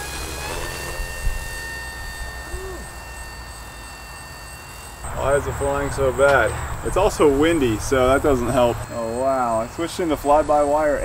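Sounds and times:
electric motor and propeller whine: 0:00.0 - 0:11.0.

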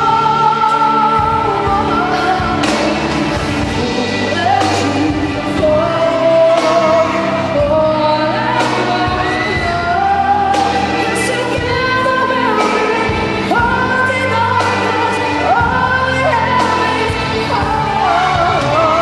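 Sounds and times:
pop band playing: 0:00.0 - 0:19.0
girl singing: 0:03.8 - 0:19.0.

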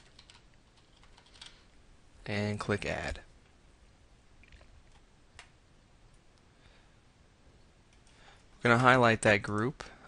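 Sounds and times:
faint keyboard typing: 0:00.0 - 0:01.8, 0:04.4 - 0:05.6, 0:07.9 - 0:08.5.

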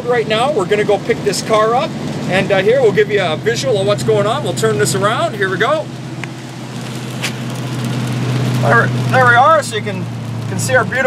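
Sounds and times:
engine drone: 0:00.0 - 0:11.0
tyres hissing on wet road: 0:00.0 - 0:11.0.

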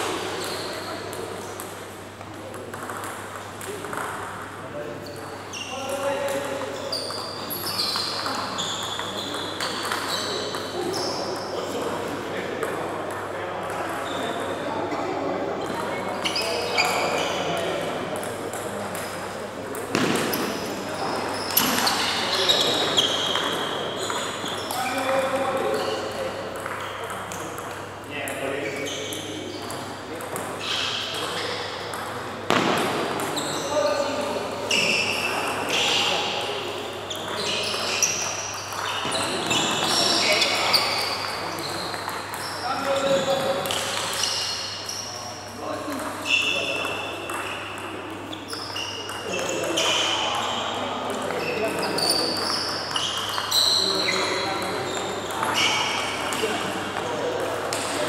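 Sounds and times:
voices in a large hall: 0:00.0 - 0:58.0.

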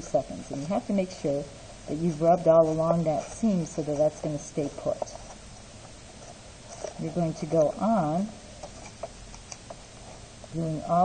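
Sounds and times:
faint paper rustling: 0:00.4 - 0:07.8, 0:08.5 - 0:10.3.

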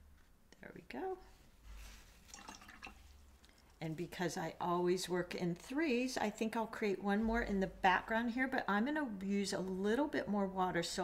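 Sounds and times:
paper towel rustling: 0:01.3 - 0:03.3
water splashes and drips: 0:02.2 - 0:03.2.

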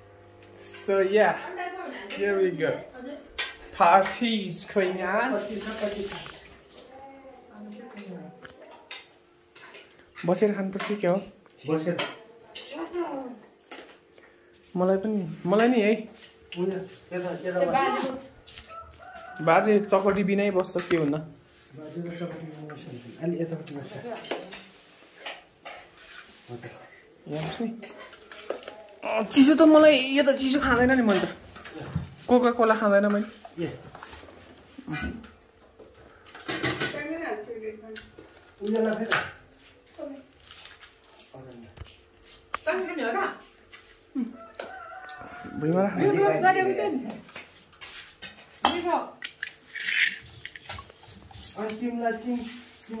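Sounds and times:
cutlery clinking on steel plates: 0:08.8 - 0:13.0, 0:24.1 - 0:28.7.

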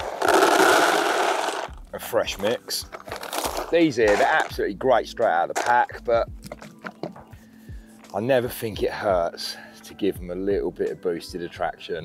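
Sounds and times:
pellets pouring into bucket: 0:00.0 - 0:01.8, 0:02.8 - 0:04.6.

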